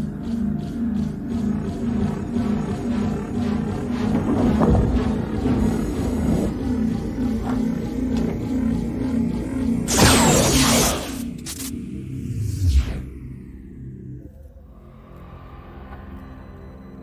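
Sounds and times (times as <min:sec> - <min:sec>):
deep growling rumble: 0:00.0 - 0:09.9
low pulsing film score: 0:00.0 - 0:17.0.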